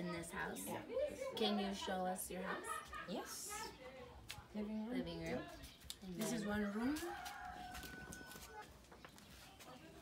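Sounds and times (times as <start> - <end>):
rooster crowing: 7.0 - 8.7.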